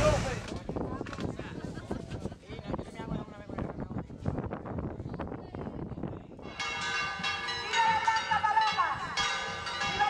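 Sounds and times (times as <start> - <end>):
wind noise on microphone: 0.0 - 10.0
church bells ringing: 6.5 - 10.0.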